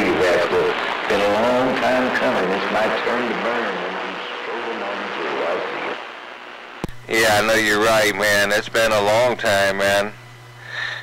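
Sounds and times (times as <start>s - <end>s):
voice over cb radio: 0.0s - 6.0s
radio static hiss: 0.0s - 11.0s
radio transmission click: 6.8s - 7.1s.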